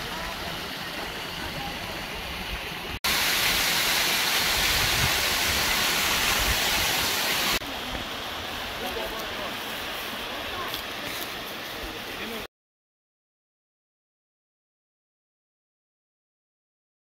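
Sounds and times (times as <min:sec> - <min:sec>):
small waterfall cascading: 0:00.0 - 0:12.5
stream rushing over rocks: 0:00.0 - 0:12.5.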